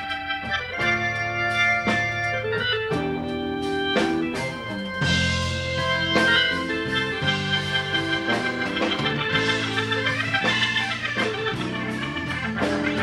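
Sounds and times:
electric organ playing chords: 0:00.0 - 0:13.0.

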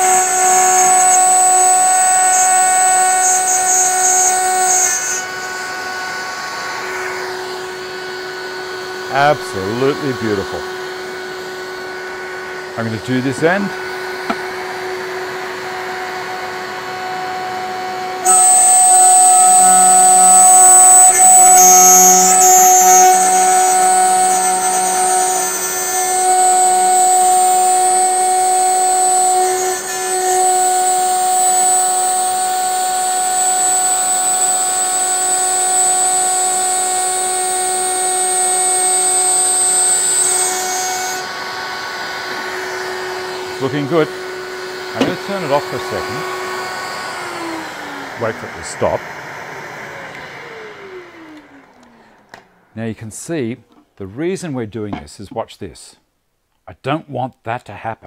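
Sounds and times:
router whining: 0:00.0 - 0:52.7
router winding down: 0:00.0 - 0:52.7.

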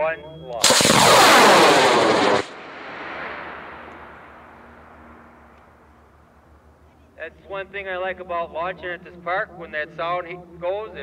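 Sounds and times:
rocket motor roar: 0:00.6 - 0:05.2
rumbling echo: 0:00.6 - 0:06.0.

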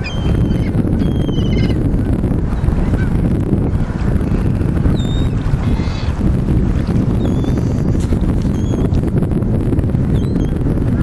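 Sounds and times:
bird calls: 0:00.0 - 0:01.8
wind buffeting microphone: 0:00.0 - 0:11.0.

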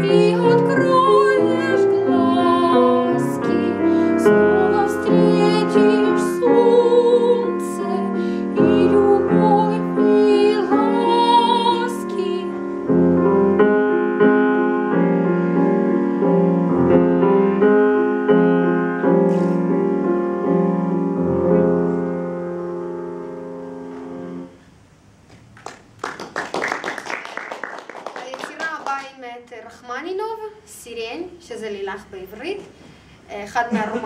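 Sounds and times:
soprano singing with vibrato: 0:00.0 - 0:12.7
piano chords: 0:00.0 - 0:28.2
audience applause: 0:25.4 - 0:29.1.

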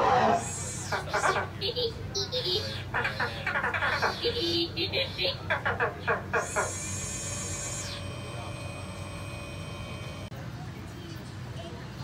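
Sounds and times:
faint steady hum: 0:00.0 - 0:12.0
voices: 0:00.0 - 0:12.0
person laughing: 0:00.9 - 0:05.7.

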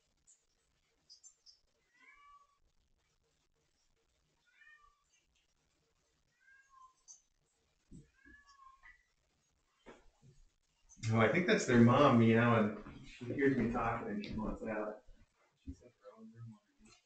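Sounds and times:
faint cat meows: 0:01.9 - 0:02.6, 0:04.4 - 0:05.0, 0:06.3 - 0:07.1, 0:08.0 - 0:09.0.

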